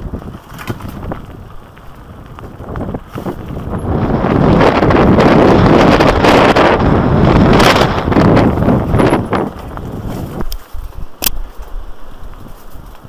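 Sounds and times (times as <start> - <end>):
bike tyres rattling over stones: 0.0 - 13.0
wind rushing over microphone: 0.0 - 13.0.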